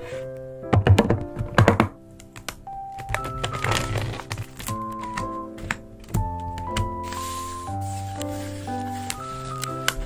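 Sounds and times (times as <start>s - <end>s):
background music: 0.0s - 10.0s
plastic lid clicks and knocks: 0.7s - 2.0s.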